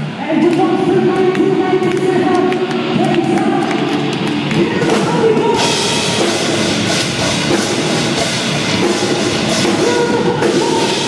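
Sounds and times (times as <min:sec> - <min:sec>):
live heavy band playing: 0:00.0 - 0:11.0.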